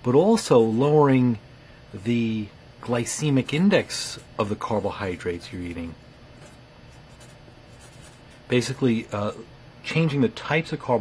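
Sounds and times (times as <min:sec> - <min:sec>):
marker writing on paper: 0:06.4 - 0:08.4.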